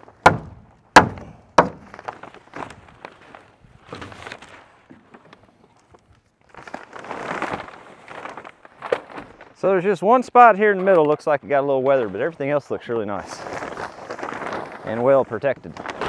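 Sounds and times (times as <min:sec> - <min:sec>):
sharp thuds: 0:00.1 - 0:02.2
plastic sheeting rustling: 0:01.8 - 0:05.7, 0:06.4 - 0:10.7, 0:11.9 - 0:16.0.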